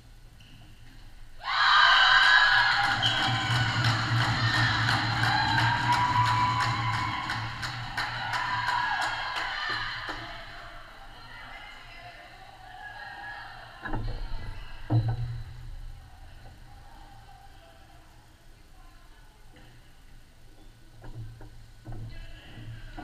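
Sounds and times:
crowd cheering and shouting: 0:01.4 - 0:11.6.

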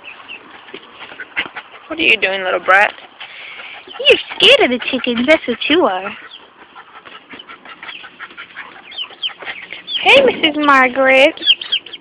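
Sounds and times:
chickens clucking and chirping: 0:00.0 - 0:12.0.

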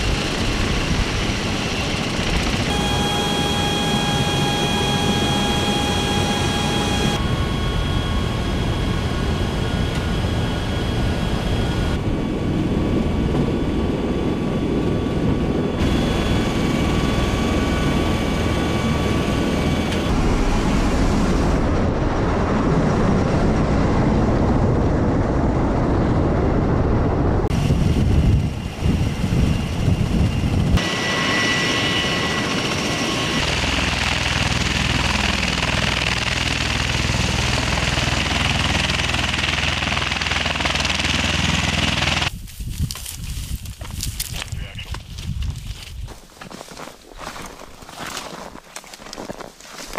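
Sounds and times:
high whine: 0:00.0 - 0:23.0
aircraft engines and rotors droning: 0:00.0 - 0:42.4.

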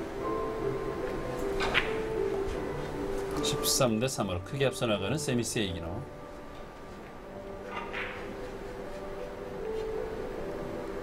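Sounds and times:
billiard balls knocking: 0:01.4 - 0:02.5, 0:07.6 - 0:08.4.

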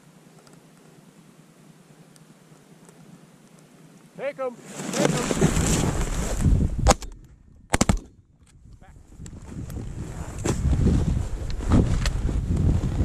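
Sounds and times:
shotgun shots: 0:06.8 - 0:08.2.

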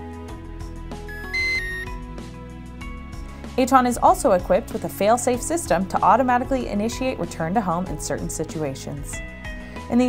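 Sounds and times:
background music: 0:00.0 - 0:10.0
short electronic beeps: 0:01.1 - 0:01.9.

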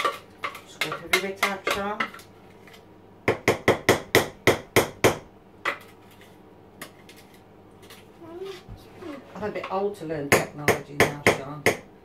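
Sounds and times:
spoon tapping plastic bowl: 0:00.0 - 0:02.2.

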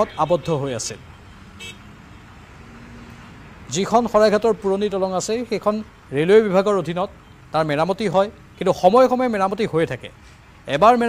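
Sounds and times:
car horn toot: 0:00.0 - 0:00.6, 0:01.6 - 0:01.9
traffic rumble: 0:00.0 - 0:11.0.

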